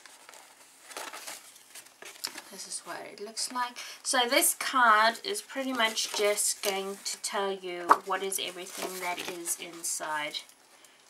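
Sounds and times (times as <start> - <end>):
paper and card rustling: 0.0 - 3.6, 4.2 - 10.9.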